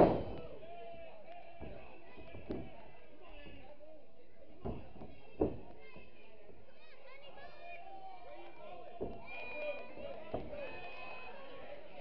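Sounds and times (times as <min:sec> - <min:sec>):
dull thumps from wrestling ring: 0:00.0 - 0:00.4
spectators talking and calling out: 0:00.0 - 0:12.0.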